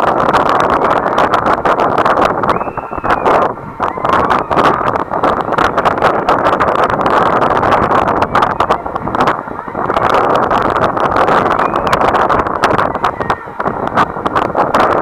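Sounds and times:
wind rushing over microphone: 0.0 - 15.0.

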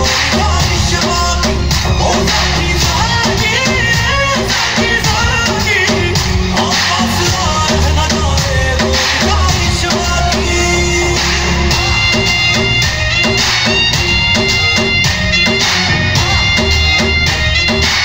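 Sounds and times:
loud dance song with beat: 0.0 - 18.0
person singing: 0.0 - 18.0.

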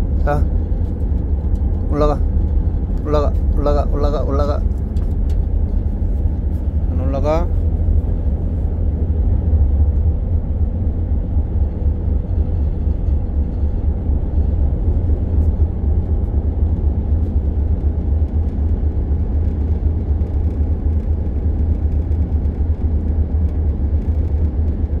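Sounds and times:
ship engine rumbling: 0.0 - 25.0.

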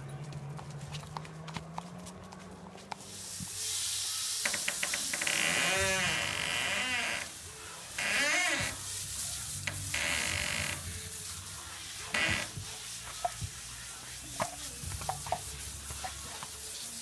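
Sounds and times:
hose spraying water: 2.8 - 17.0.

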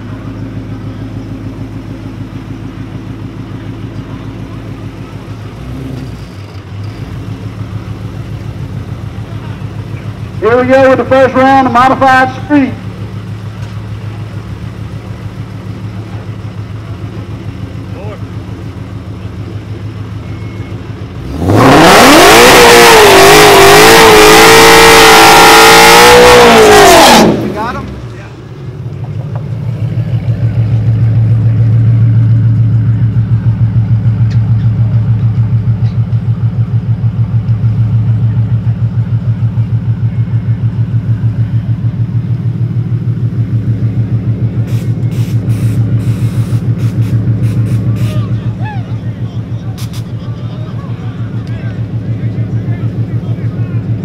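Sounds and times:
car engine idling and revving: 0.0 - 54.0
tyres spinning in a burnout: 21.1 - 34.0.

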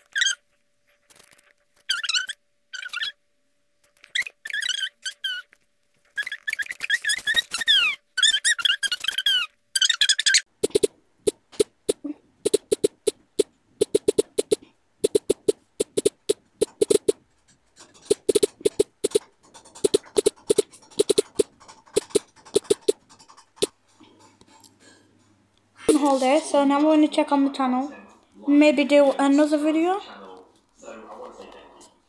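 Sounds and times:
high-pitched squeaky chirps: 0.0 - 0.4, 1.8 - 3.2, 4.0 - 10.9, 11.9 - 17.2, 18.1 - 19.2, 19.8 - 23.0
on-screen keyboard tapping: 10.6 - 17.2, 17.9 - 23.7.

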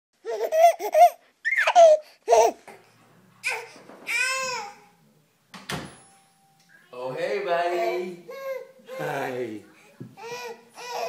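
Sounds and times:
baby laughing: 0.2 - 2.7.

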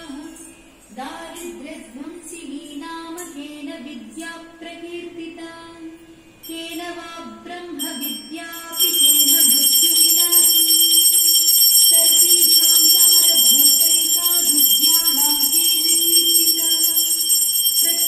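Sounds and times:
bell ringing: 7.8 - 18.0.

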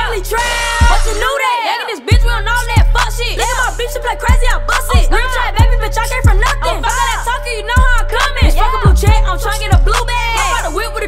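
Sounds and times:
deep bass line: 0.0 - 1.3, 2.1 - 11.0
rapping over a beat: 0.0 - 11.0.

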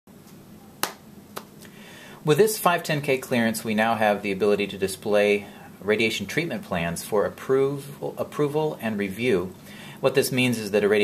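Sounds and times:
low steady hum: 0.1 - 11.0.

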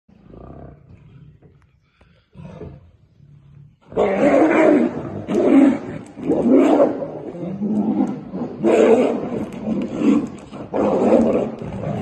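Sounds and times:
tigers growling: 2.2 - 12.0
tigers roaring and snarling: 3.8 - 12.0.

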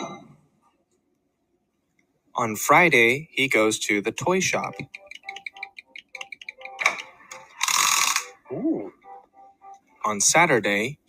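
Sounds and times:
quick ratchet-like clicking: 7.6 - 8.3.

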